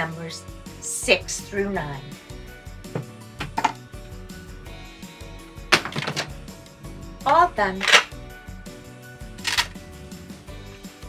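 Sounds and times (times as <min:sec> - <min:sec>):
quiet background music: 0:00.0 - 0:11.0
handling clicks: 0:07.8 - 0:08.1, 0:09.4 - 0:09.7.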